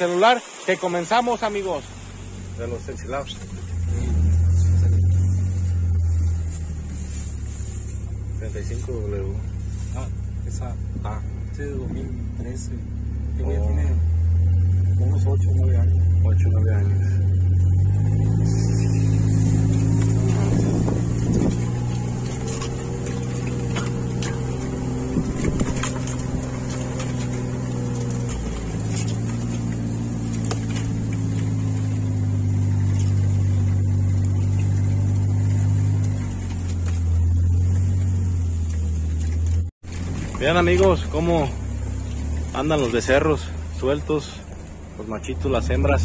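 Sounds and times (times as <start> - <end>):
utility vehicle engine running: 1.2 - 46.0.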